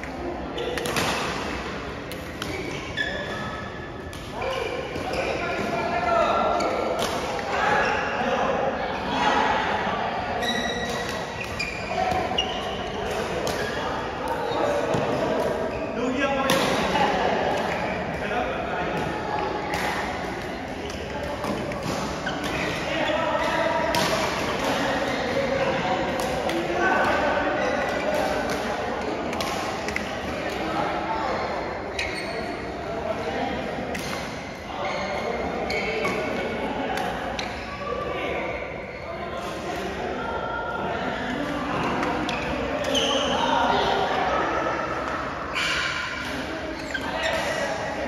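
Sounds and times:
voices talking: 0.0s - 48.0s
shoes squeaking on court floor: 2.1s - 8.2s, 10.4s - 16.0s, 20.8s - 26.3s, 27.0s - 29.2s, 31.4s - 32.8s, 33.9s - 36.5s, 41.3s - 44.2s, 45.5s - 47.6s.

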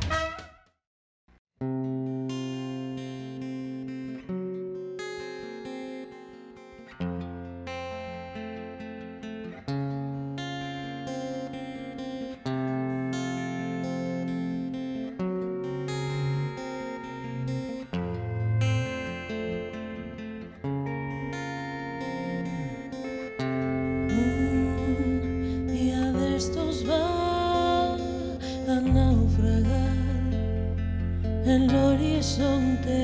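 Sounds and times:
theme tune: 0.0s - 0.6s
acoustic guitar chords: 1.6s - 33.0s.

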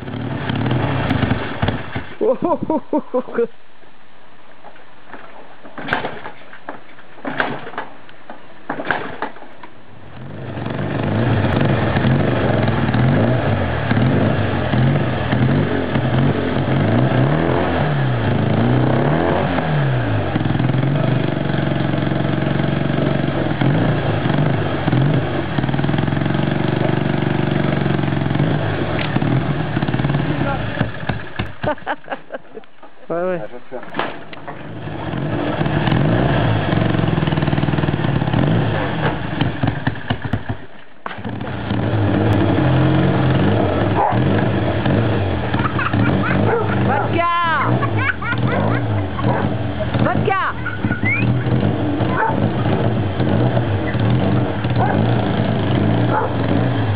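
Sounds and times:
motorcycle engine revving: 0.0s - 2.8s, 9.9s - 32.4s, 33.9s - 56.9s.

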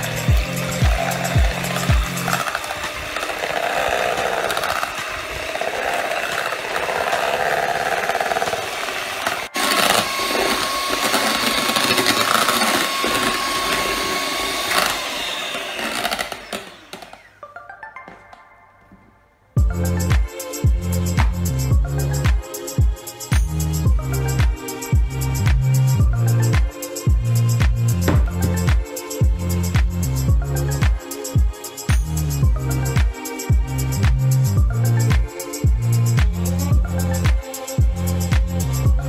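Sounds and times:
background music with beat: 0.0s - 7.2s, 17.4s - 39.0s
electric hand mixer whirring: 0.0s - 17.4s, 19.6s - 39.0s.

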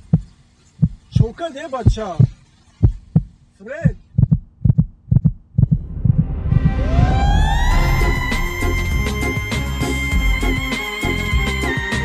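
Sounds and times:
heartbeat thuds: 0.0s - 7.2s
swelling noise: 5.5s - 11.4s
siren-like whine: 5.7s - 12.0s.

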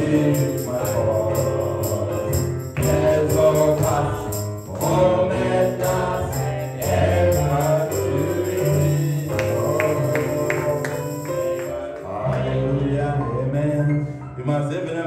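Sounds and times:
sharp percussion hits: 0.0s - 11.9s
gospel singing voices: 0.0s - 15.0s.

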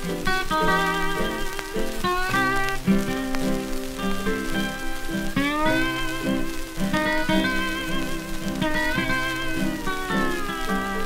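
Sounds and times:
record surface hiss and crackle: 0.0s - 11.0s
string band plucking guitars: 0.0s - 11.0s.

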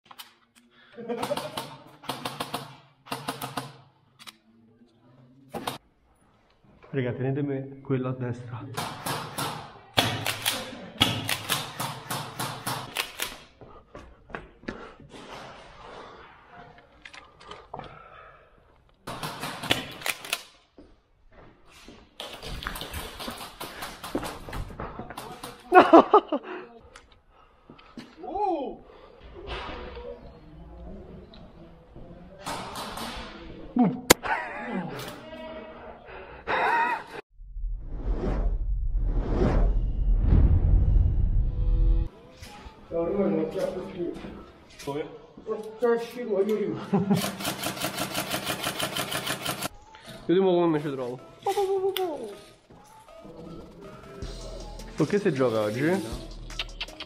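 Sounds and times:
quick footsteps on concrete stairs: 13.6s - 15.1s
deep bass drone: 37.4s - 42.1s.

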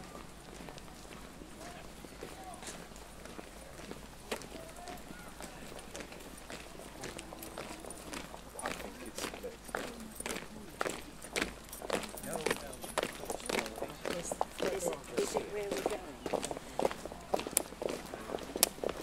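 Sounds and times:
footsteps on paved path: 0.0s - 19.0s
low voices murmuring: 0.0s - 19.0s.

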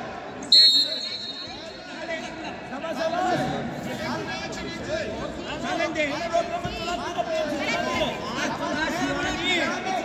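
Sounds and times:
referee's whistle blast: 0.4s - 1.8s.

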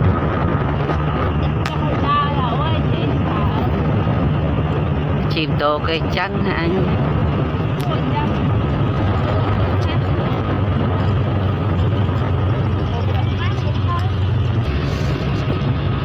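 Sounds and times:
wind on microphone: 0.0s - 16.0s.

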